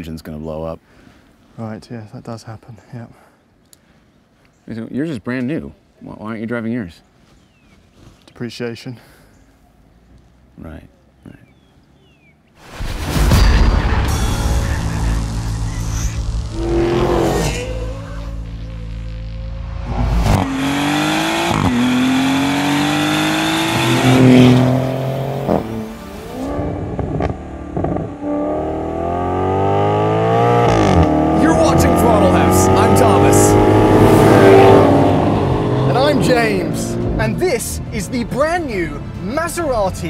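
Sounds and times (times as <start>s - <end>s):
car engine accelerating hard: 14.5s - 37.7s.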